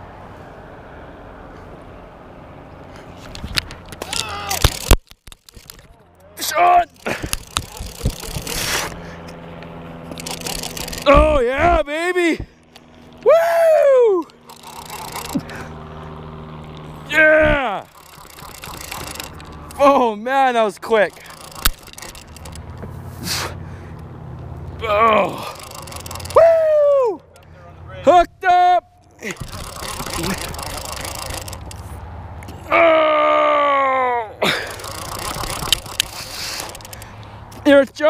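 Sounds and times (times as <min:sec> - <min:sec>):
steady low hum: 0:01.4 - 0:28.0
man whooping: 0:04.0 - 0:04.8, 0:13.2 - 0:14.4, 0:17.1 - 0:17.9, 0:24.8 - 0:25.6, 0:26.4 - 0:27.3, 0:32.6 - 0:34.5
fishing reel whirring: 0:04.0 - 0:05.9, 0:06.6 - 0:09.2, 0:10.0 - 0:11.7, 0:13.1 - 0:15.9, 0:16.6 - 0:20.0, 0:20.8 - 0:22.8, 0:24.8 - 0:26.6, 0:29.2 - 0:32.0, 0:34.4 - 0:37.3
hand rubbing microphone: 0:06.9 - 0:11.9, 0:16.7 - 0:19.9, 0:29.2 - 0:32.0, 0:34.7 - 0:37.6.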